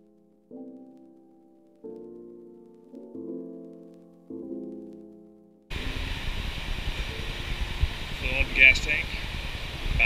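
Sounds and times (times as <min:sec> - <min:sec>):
held piano chord: 0:00.0 - 0:08.6.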